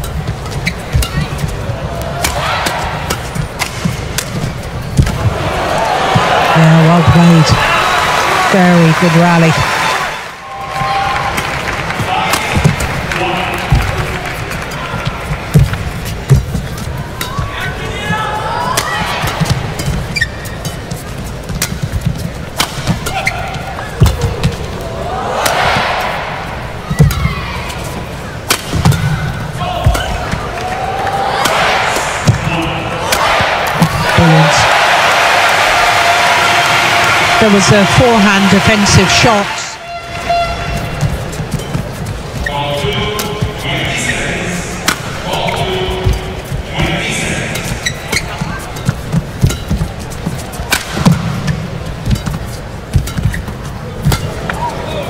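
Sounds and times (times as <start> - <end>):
rackets striking shuttlecock: 0.0 - 5.8, 18.6 - 24.8, 26.8 - 34.1, 44.8 - 54.9
arena crowd noise: 0.0 - 55.0.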